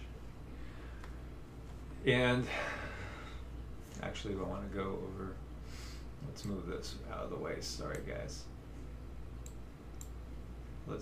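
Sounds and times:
low steady hum: 0.0 - 11.0
computer mouse clicks: 9.4 - 10.2.

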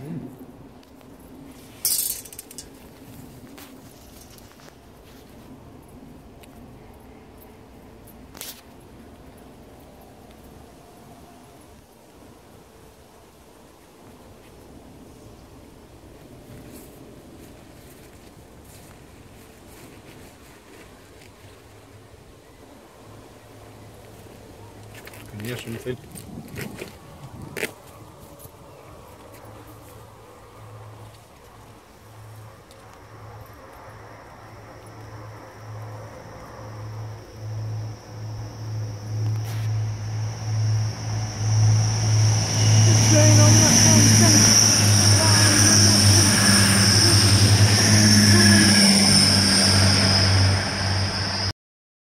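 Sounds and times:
high-pitched wheel and rail whine: 1.6 - 4.7, 32.7 - 51.5
train engine throb: 33.0 - 51.5.

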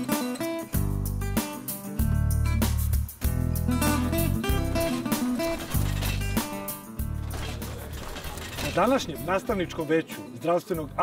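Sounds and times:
ratcheting clatter: 4.6 - 9.2.

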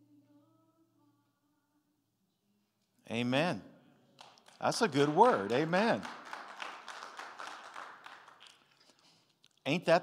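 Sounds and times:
congregation applauding: 4.2 - 9.3.

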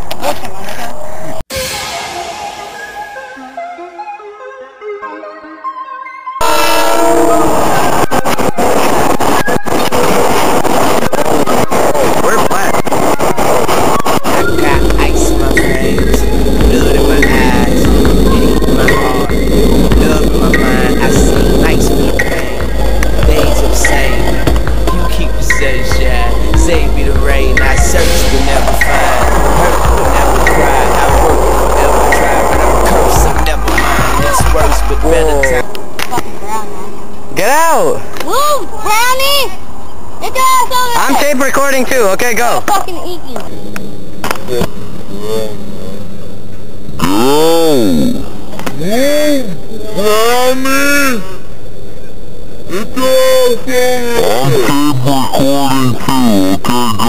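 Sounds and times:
electric train rushing past: 1.5 - 3.8, 14.4 - 36.0
hip hop music with heavy bass: 1.5 - 4.3, 5.5 - 37.4, 54.2 - 57.0
train horn chord: 6.4 - 7.7.

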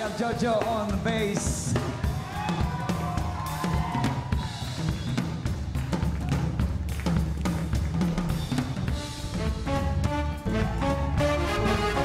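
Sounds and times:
drum kit playing busy beat: 0.0 - 12.0.

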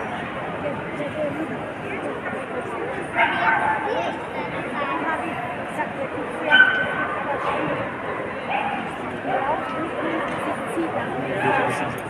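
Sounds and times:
crowd chatter: 0.0 - 12.0
dogs yipping and barking: 6.5 - 7.0.

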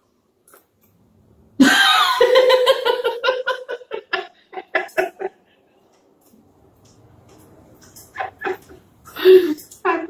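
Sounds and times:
woman giggling: 1.6 - 5.4, 8.2 - 10.0.

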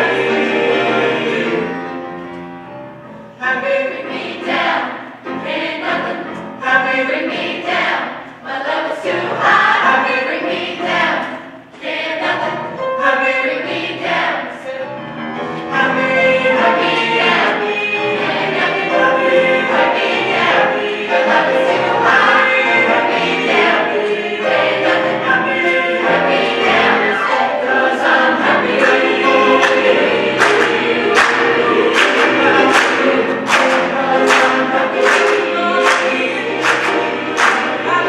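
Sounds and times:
gospel choir singing: 0.0 - 2.7, 3.3 - 38.0
grand piano: 0.0 - 38.0
people clapping on the beat: 28.6 - 38.0.

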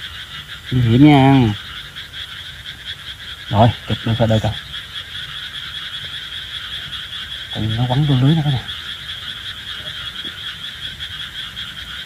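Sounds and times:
frogs calling: 0.0 - 12.0.

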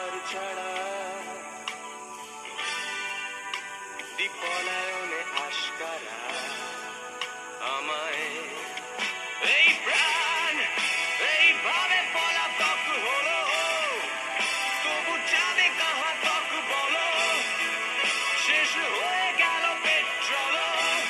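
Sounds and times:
person singing: 0.0 - 1.7, 4.2 - 7.0, 7.6 - 21.0
instrumental accompaniment: 0.0 - 21.0.

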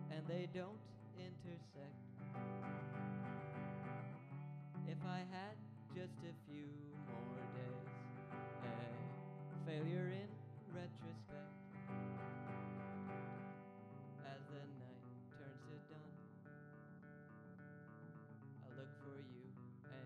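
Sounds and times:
electric guitar strumming chords: 0.0 - 20.0.

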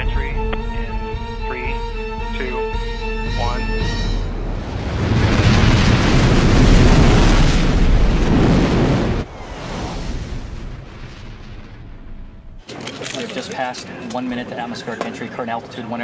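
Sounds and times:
loud low rushing noise: 3.2 - 12.6.

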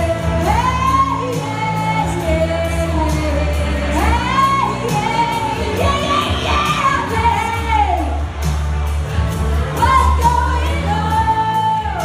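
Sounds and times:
woman singing into microphone: 0.0 - 8.3, 9.7 - 12.0
backing music with bass and beat: 0.0 - 12.0.

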